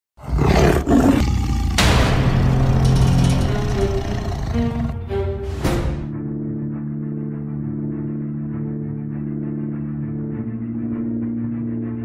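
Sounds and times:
tiger roaring and growling: 0.2s - 5.7s.

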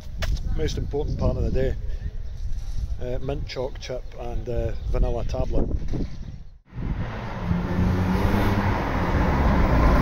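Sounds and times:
car engine: 6.7s - 10.0s.

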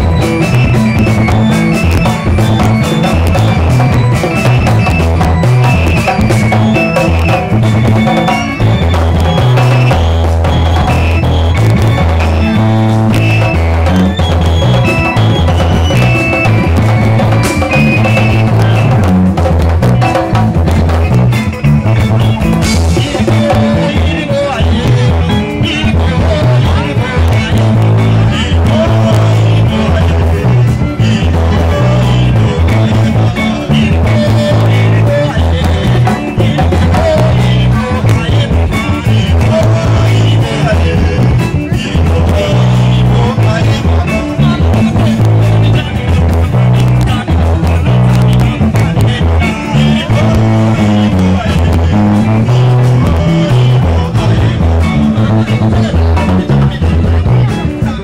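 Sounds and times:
deep moving bass line: 0.0s - 58.0s
drum kit driving beat: 0.0s - 58.0s
high electric guitar lines: 0.0s - 58.0s.

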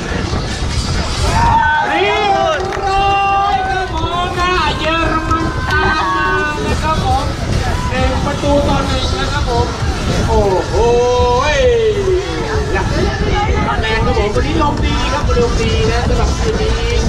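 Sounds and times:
commentator over loudspeakers: 0.0s - 17.0s
crowd chatter: 0.0s - 17.0s
steady low rumble: 0.0s - 17.0s.

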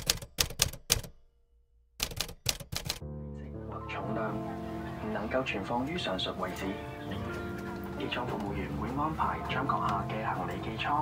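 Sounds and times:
typewriter key clacks: 0.0s - 1.1s, 2.0s - 3.0s.

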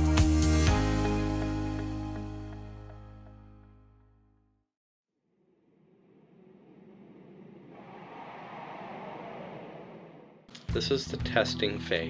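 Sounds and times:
whoosh transition effect: 5.6s - 10.5s.

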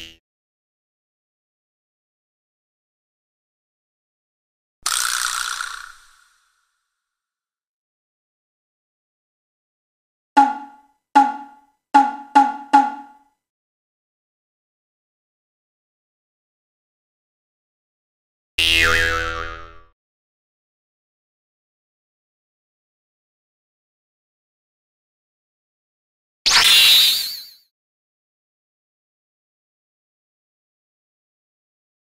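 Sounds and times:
cartoon boing sound effect: 10.4s - 13.2s.

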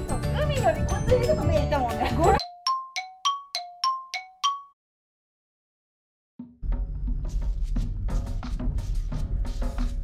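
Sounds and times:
bell-like chime jingle: 0.0s - 4.8s.

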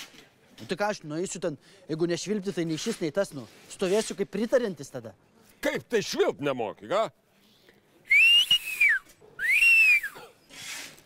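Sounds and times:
man whistling: 8.1s - 10.3s.

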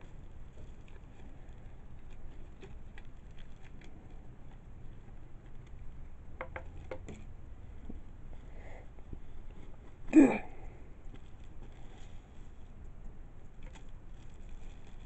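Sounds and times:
light rustles and ticks: 0.0s - 15.0s.

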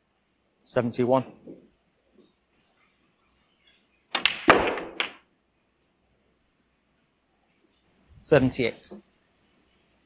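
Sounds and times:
snooker balls clicking: 4.1s - 5.3s.

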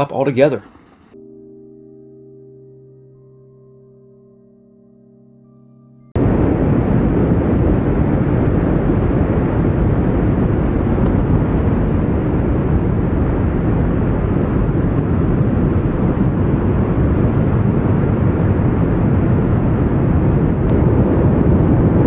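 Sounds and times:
lava fountains rushing: 6.2s - 22.0s.

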